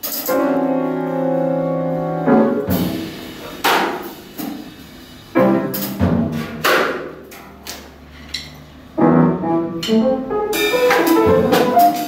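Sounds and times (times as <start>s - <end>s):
drum and piano music: 0.0s - 7.2s, 9.0s - 12.0s
sharp struck hit: 9.8s - 12.0s.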